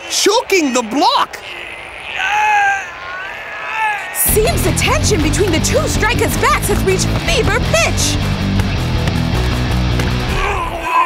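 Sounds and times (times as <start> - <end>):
cartoon character crying out: 10.4 - 11.0.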